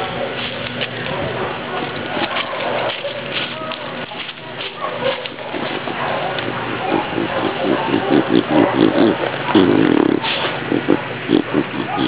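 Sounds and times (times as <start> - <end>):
dog sniffing and snorting: 0.0 - 12.0.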